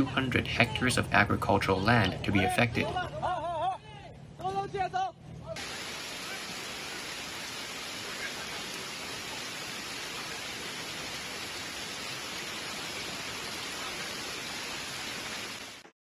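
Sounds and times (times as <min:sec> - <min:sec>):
floodwater rushing down a street: 0:05.6 - 0:15.9.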